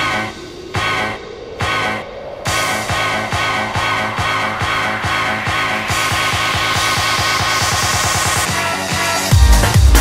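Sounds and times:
hissing noise sweep: 0.0 - 9.3
drum roll build-up: 0.0 - 10.0.

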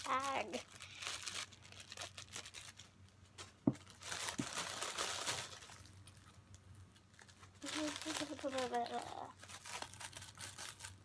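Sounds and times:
plastic bag crinkling: 0.0 - 11.0.

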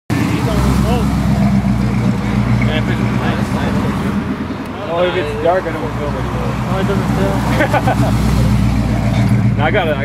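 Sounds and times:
pickup truck engine driving past: 0.1 - 10.0.

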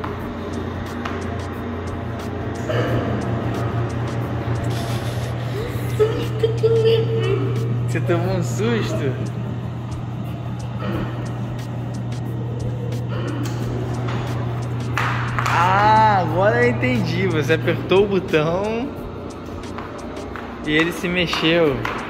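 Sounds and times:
steady low hum: 0.0 - 22.0
indistinct voices: 2.5 - 19.7.

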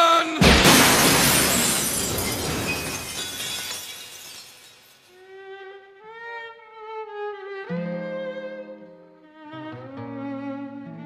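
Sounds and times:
glass window shattering: 0.4 - 5.1.

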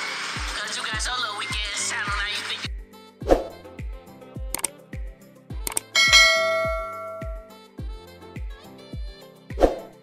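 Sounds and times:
background music with kick drum: 0.4 - 10.0
mouse click: 4.5 - 4.7, 5.7 - 5.9
notification bell chime: 6.0 - 7.5.

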